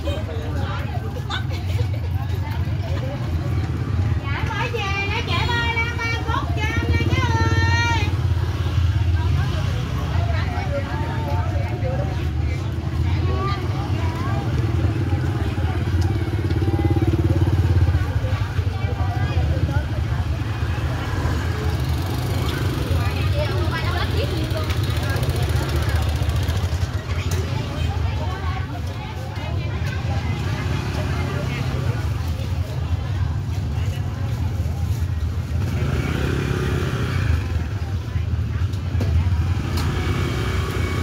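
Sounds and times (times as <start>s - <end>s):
motorbike engines passing: 0.0s - 41.0s
voices of shoppers and vendors: 0.0s - 41.0s.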